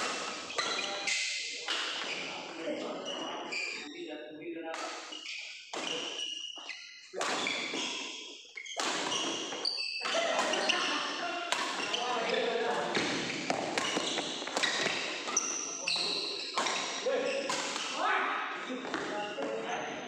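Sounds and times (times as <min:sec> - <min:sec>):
shoes squeaking on court floor: 0:00.0 - 0:04.0, 0:04.8 - 0:20.0
players' voices: 0:00.0 - 0:05.0, 0:10.0 - 0:20.0
rackets striking shuttlecock: 0:07.2 - 0:10.8, 0:11.5 - 0:12.0, 0:12.7 - 0:18.0.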